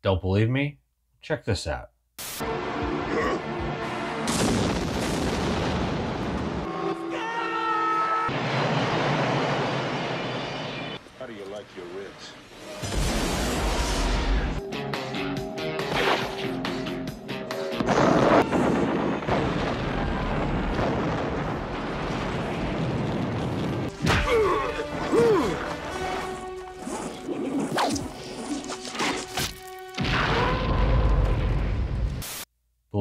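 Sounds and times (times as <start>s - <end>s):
action film music: 2.4s - 4.9s, 12.4s - 18.6s, 23.9s - 31.3s
explosions booming: 4.1s - 6.7s, 8.3s - 11.0s, 12.7s - 14.6s, 17.8s - 25.0s.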